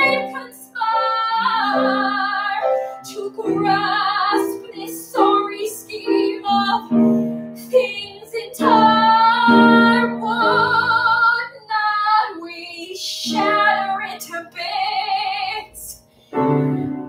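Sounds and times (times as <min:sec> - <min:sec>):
woman singing with vibrato: 0:00.0 - 0:16.0
piano accompaniment: 0:00.0 - 0:17.0.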